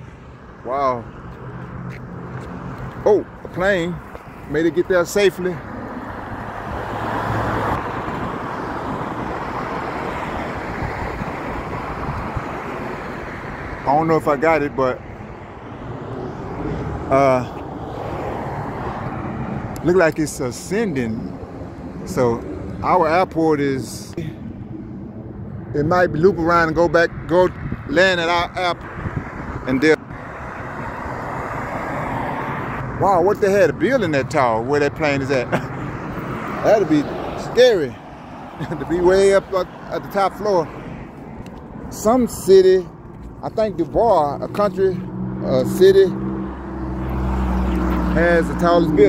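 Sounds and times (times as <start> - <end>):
distant plane rumble: 0.0 - 49.0
road traffic: 0.0 - 49.0
car driving past: 5.6 - 13.9, 15.1 - 20.1, 28.8 - 33.0, 44.4 - 49.0.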